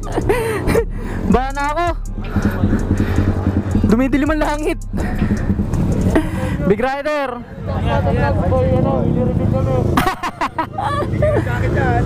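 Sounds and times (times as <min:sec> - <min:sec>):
music: 0:00.0 - 0:06.8
steady low rumble: 0:00.0 - 0:07.5.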